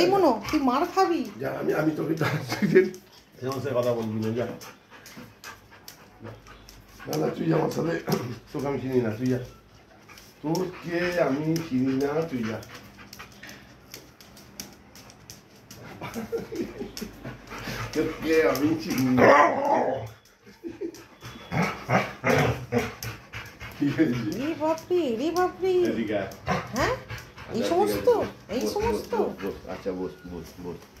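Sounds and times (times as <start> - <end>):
dog panting: 0.0 - 31.0.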